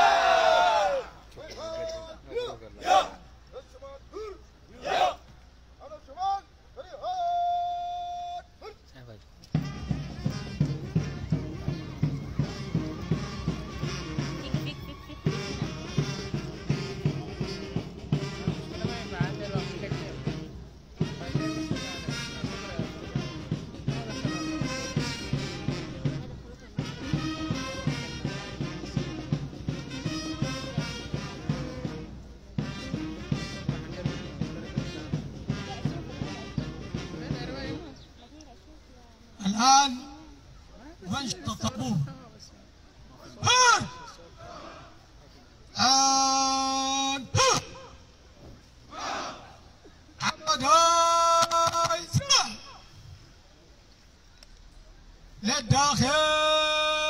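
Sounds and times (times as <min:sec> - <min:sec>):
band music with brass: 0:00.0 - 0:03.2, 0:04.7 - 0:05.2, 0:09.4 - 0:40.6, 0:55.4 - 0:57.0.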